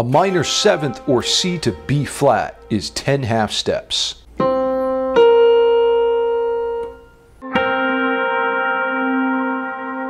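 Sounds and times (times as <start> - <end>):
electric guitar chord ringing: 0.0 - 3.7, 4.3 - 10.0
electronic keyboard chord: 0.1 - 3.6, 4.3 - 10.0.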